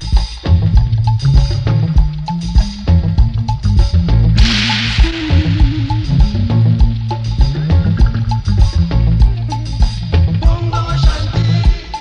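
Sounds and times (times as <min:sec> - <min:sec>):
drum kit: 0:00.0 - 0:12.0
heavy bass line: 0:00.0 - 0:12.0
hissing wash of noise: 0:04.4 - 0:07.8.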